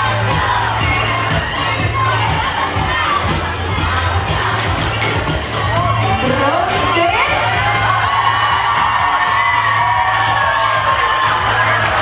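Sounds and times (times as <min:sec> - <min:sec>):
audience screaming and cheering: 0:00.0 - 0:12.0
loud dance music: 0:00.0 - 0:12.0.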